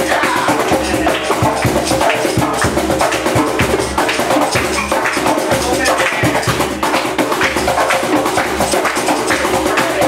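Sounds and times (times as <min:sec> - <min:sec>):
djembe drumming: 0:00.0 - 0:10.0
other percussion and instruments: 0:00.0 - 0:10.0.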